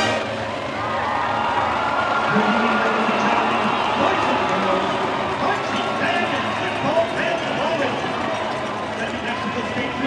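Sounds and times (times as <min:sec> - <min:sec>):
crowd chatter: 0:00.0 - 0:10.0.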